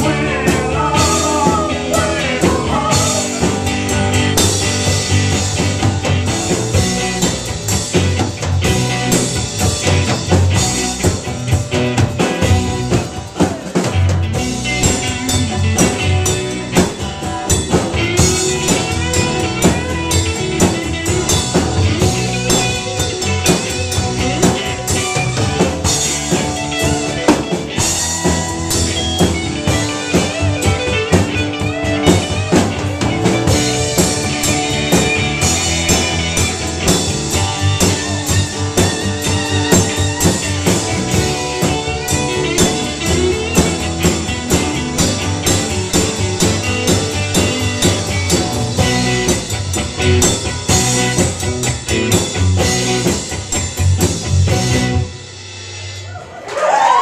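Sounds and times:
drum kit steady beat: 0.0s - 56.2s
live band playing: 0.0s - 57.0s.

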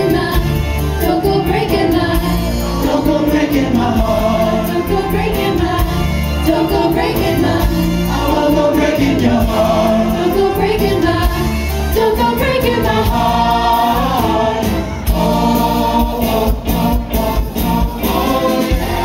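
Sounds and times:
choir singing in harmony: 0.0s - 19.0s
instrumental accompaniment: 0.0s - 19.0s
steady drum beat: 2.1s - 19.0s.

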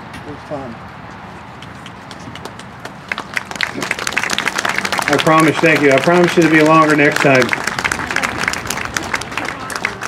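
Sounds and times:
audience applauding: 2.4s - 10.0s.

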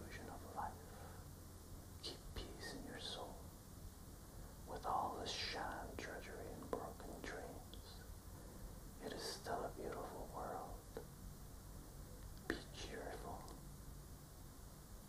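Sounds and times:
man whispering: 0.0s - 1.2s, 2.0s - 3.5s, 4.7s - 8.1s, 9.0s - 11.1s, 12.4s - 13.6s.

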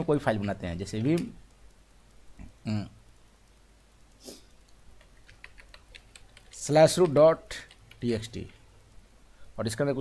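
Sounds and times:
soft puff of noise: 4.2s - 4.5s
keyboard typing clicks: 4.6s - 8.7s.

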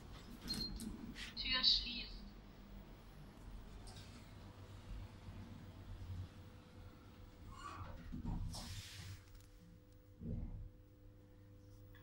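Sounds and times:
low steady hum: 0.0s - 12.0s
recorded elevator voice announcement: 1.2s - 2.4s.

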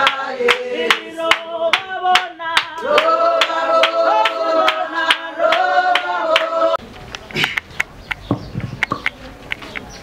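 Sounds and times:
group singing held notes: 0.0s - 6.8s
rhythmic hand clapping: 0.0s - 6.8s.

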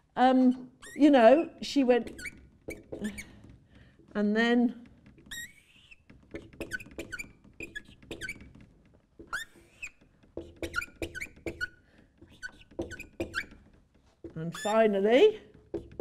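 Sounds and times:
marker squeaking on whiteboard: 0.4s - 3.9s, 4.7s - 16.0s.

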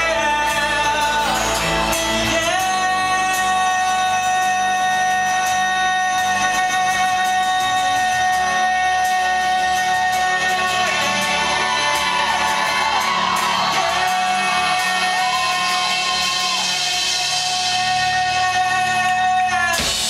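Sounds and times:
live rock band playing: 0.0s - 20.0s
man singing: 0.0s - 20.0s.

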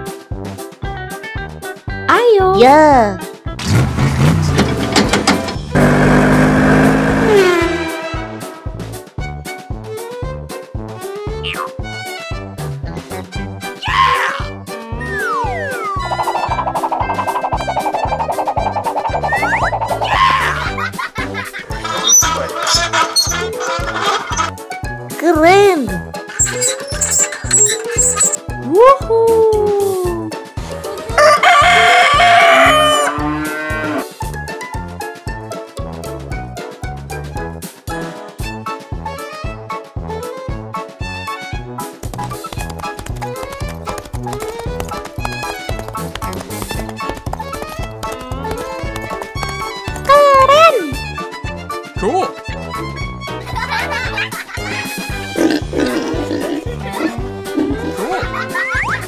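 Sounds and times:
auto rickshaw engine running: 3.6s - 8.0s
gliding tone rising and falling: 15.0s - 20.2s
rooster crowing: 31.1s - 33.3s.

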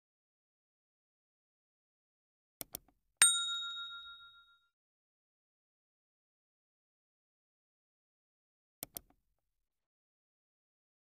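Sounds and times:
bright bell ding: 3.2s - 4.7s.

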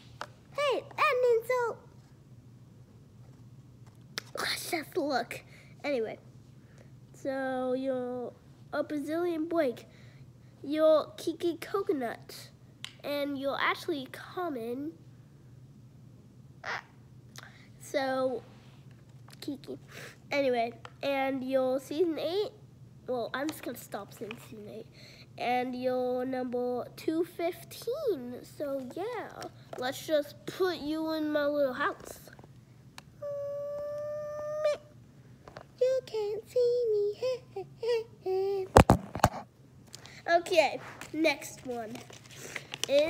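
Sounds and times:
low steady hum: 0.0s - 43.0s
girl humming high note: 33.2s - 34.9s.

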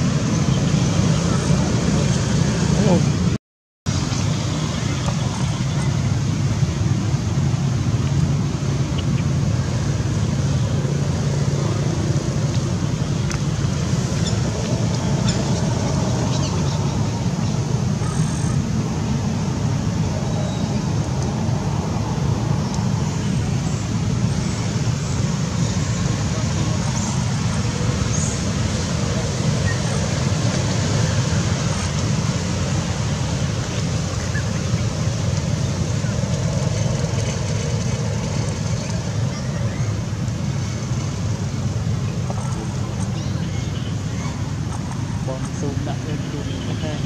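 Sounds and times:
low outdoor rumble: 0.0s - 47.0s
faint voices: 23.3s - 31.6s.

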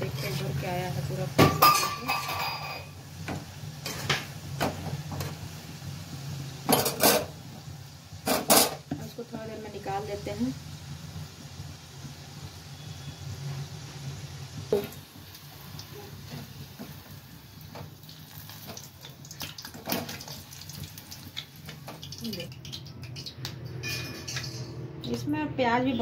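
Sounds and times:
oil sizzling: 0.0s - 26.0s
strainer clinking against pan: 1.4s - 2.9s, 23.8s - 24.8s.

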